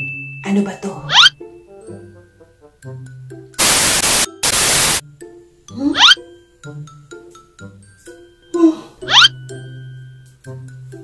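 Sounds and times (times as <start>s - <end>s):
loud bursts of static hiss: 3.6s - 5.0s.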